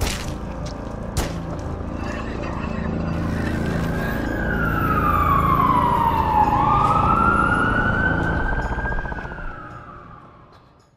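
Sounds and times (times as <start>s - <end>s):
siren wailing: 3.2s - 10.9s.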